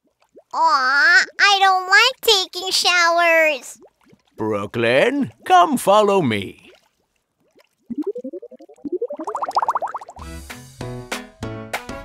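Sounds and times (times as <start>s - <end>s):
cartoon warbling pitch sweeps: 7.9s - 10.2s
bouncy children's music: 10.2s - 12.0s.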